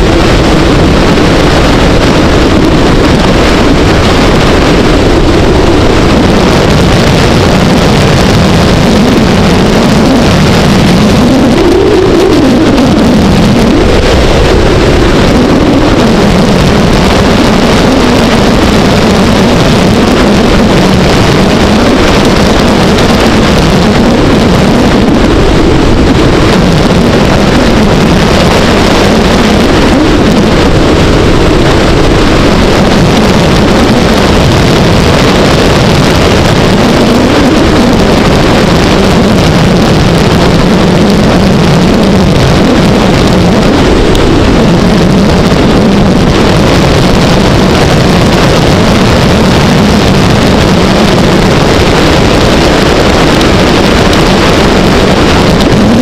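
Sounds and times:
wind noise on microphone: 0.0s - 56.0s.

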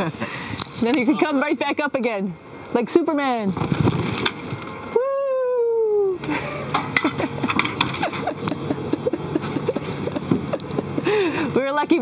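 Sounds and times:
ventilation whirring: 0.0s - 12.0s
woman's drawn-out whoo: 4.9s - 6.2s.

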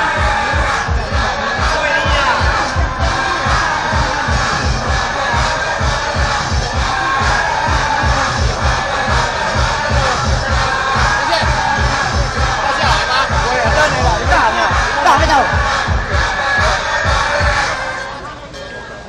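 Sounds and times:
steady drumbeat: 0.0s - 17.8s
crowd shouting and cheering: 0.0s - 19.0s.

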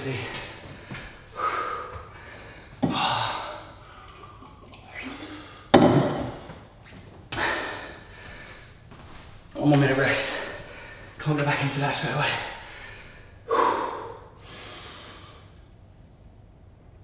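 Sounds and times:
man breathing hard: 0.2s - 4.3s, 4.9s - 9.1s, 10.2s - 11.2s, 12.4s - 15.7s.

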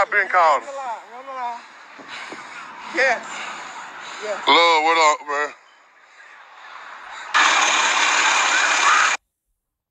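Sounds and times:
loud steady rushing noise: 7.2s - 9.2s.

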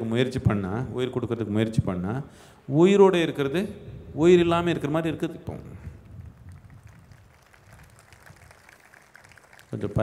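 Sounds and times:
man talking: 0.0s - 5.9s, 9.7s - 10.0s
faint low background noise: 0.0s - 10.0s.

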